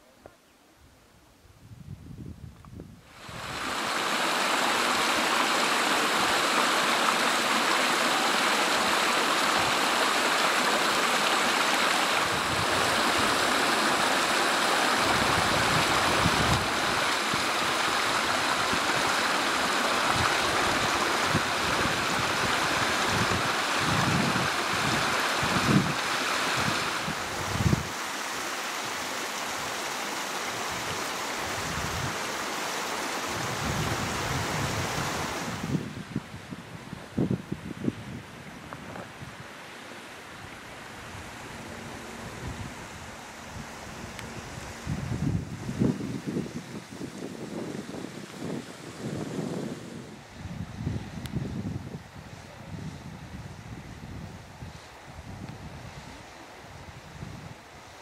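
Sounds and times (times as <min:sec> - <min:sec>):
stream splashing over rocks: 0:03.1 - 0:35.7.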